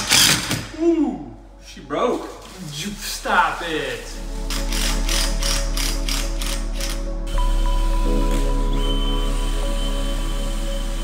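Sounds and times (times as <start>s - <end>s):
impact driver rapid clicks: 0.0s - 0.6s
music: 0.0s - 11.0s.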